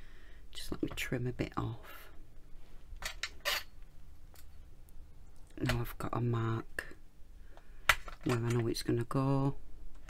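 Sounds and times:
metal blade scraping on glass: 3.4 - 3.8.

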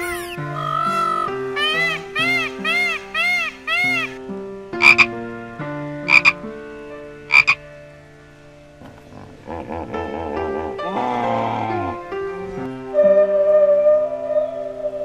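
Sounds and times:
frog croaking: 0.0 - 4.2, 4.8 - 5.1, 6.0 - 6.4, 7.3 - 7.6
short animal calls: 0.0 - 4.2, 6.1 - 6.3, 7.3 - 7.6
soft background music: 0.0 - 15.0.

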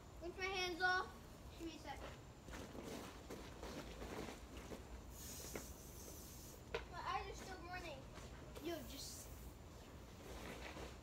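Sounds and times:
brief high hiss: 5.1 - 6.6
distant children's voices: 5.6 - 9.5.

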